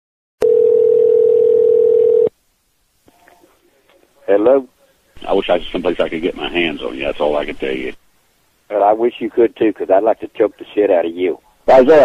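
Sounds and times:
telephone ringback tone: 0:00.4 - 0:02.3.

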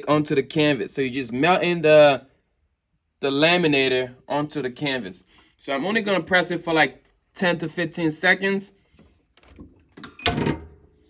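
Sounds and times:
heat press metal clunk: 0:10.0 - 0:10.9.

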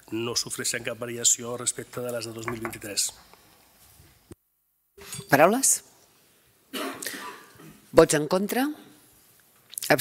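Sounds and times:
man coughing: 0:06.7 - 0:07.8.

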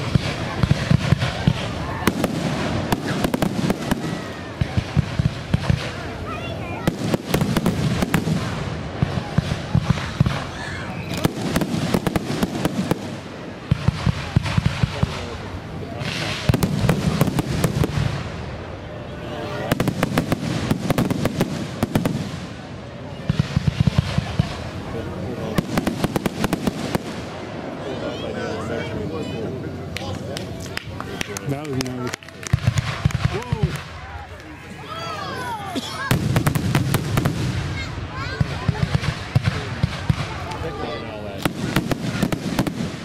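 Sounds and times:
fireworks crackling: 0:00.0 - 0:28.3, 0:29.8 - 0:43.0.

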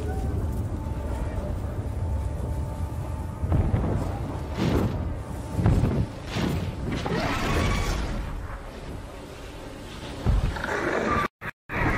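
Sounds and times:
heavy low rumbling: 0:00.0 - 0:07.2.

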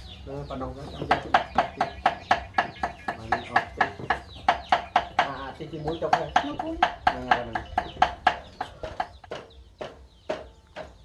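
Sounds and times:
chicken clucking: 0:00.3 - 0:11.0.

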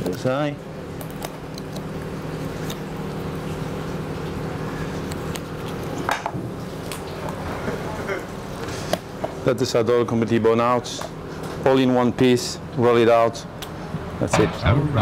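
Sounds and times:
kitchen equipment humming: 0:00.0 - 0:15.0.

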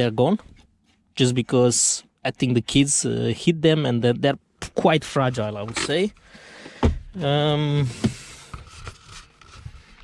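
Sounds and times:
faint clicks and rubs: 0:00.0 - 0:02.8, 0:08.0 - 0:10.0.

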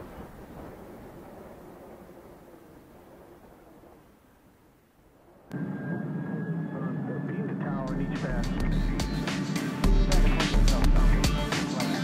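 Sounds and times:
turboprop plane climbing away: 0:00.0 - 0:11.2
music with a voice: 0:07.1 - 0:12.0.

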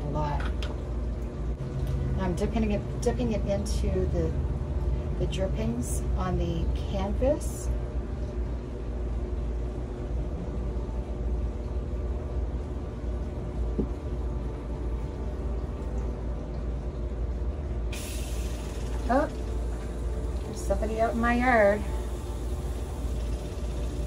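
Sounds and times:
low mechanical hum: 0:00.0 - 0:24.0
hiss: 0:17.9 - 0:19.3.

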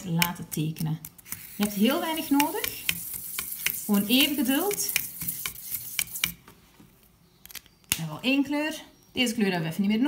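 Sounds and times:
marker clicks and taps: 0:00.1 - 0:06.4.

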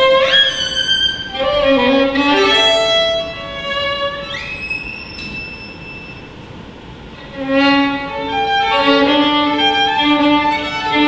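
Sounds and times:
violin holding high note: 0:00.0 - 0:06.5
faint hall noise: 0:00.0 - 0:11.0.

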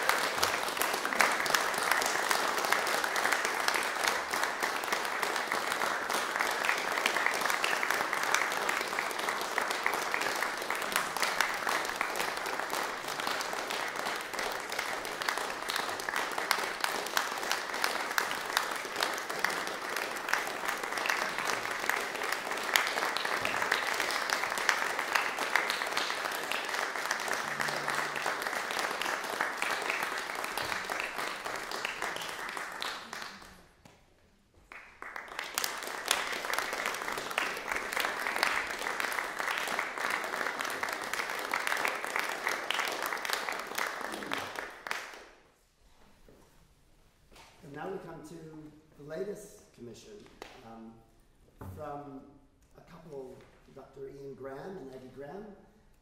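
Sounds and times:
audience applauding: 0:00.0 - 0:33.9, 0:34.6 - 0:45.4.

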